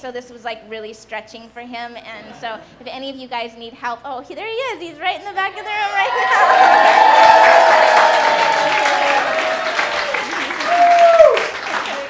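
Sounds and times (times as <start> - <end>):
loud falling cry: 6.1 - 11.5
audience clapping: 6.1 - 12.0.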